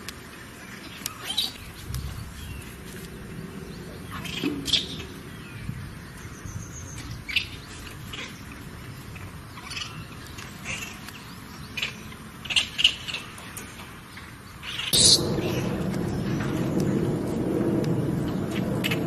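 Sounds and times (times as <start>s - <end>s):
loud low rumbling: 2.0s - 6.7s, 14.9s - 19.0s.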